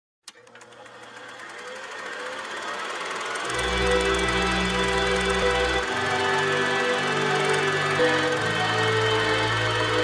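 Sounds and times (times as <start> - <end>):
film projector clattering: 0.3 - 10.0.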